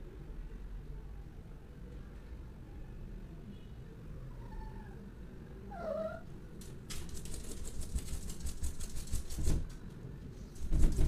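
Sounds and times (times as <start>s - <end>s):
cat meowing: 5.7s - 6.3s.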